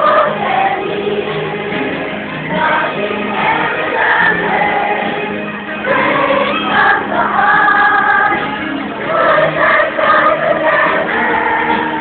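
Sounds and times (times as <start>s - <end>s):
choir singing with music: 0.0s - 12.0s.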